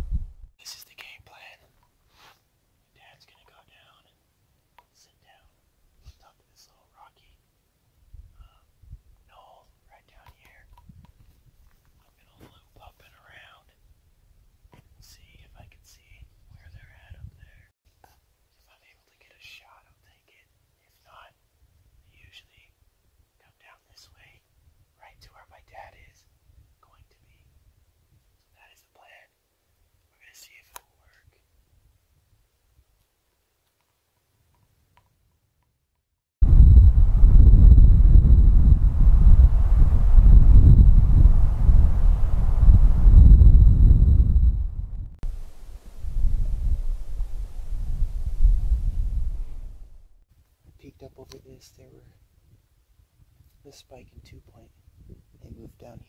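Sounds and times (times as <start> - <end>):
wind rumble on microphone: 0.0 - 0.5, 8.1 - 9.4, 10.7 - 11.7, 14.7 - 17.6, 36.4 - 50.1, 54.9 - 56.0
man whispering: 0.6 - 1.8, 2.9 - 4.2, 4.9 - 7.4, 8.3 - 10.7, 12.0 - 13.8, 15.0 - 21.4, 22.0 - 22.8, 23.4 - 27.6, 28.5 - 29.4, 30.1 - 31.5, 50.7 - 52.2, 53.6 - 54.8, 55.4 - 56.0
faint high whine: 36.4 - 50.0.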